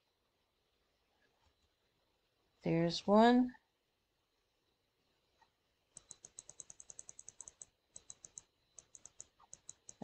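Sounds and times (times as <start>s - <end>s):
rapid computer clicking: 5.9s - 10.0s.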